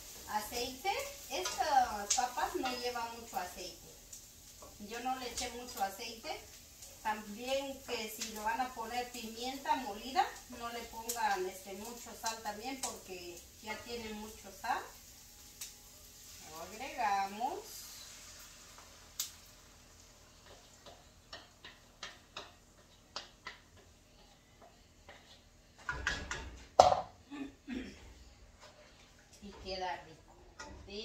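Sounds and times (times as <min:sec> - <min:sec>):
faint sizzle: 0:00.0 - 0:31.0
wooden spoon scraping a pan: 0:20.3 - 0:26.7, 0:28.4 - 0:31.0.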